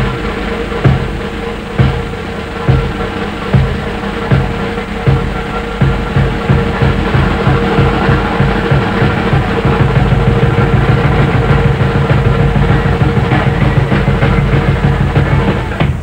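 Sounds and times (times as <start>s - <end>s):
cymbals ringing: 0.0s - 16.0s
fast jazz drumming: 0.0s - 16.0s.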